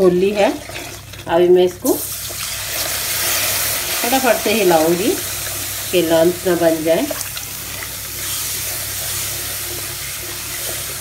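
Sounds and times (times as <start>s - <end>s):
sugar water sizzling in a pan: 0.0s - 11.0s.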